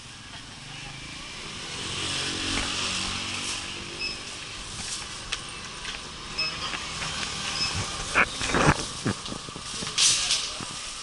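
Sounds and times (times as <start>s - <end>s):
motorcycle passing: 0.0s - 9.7s.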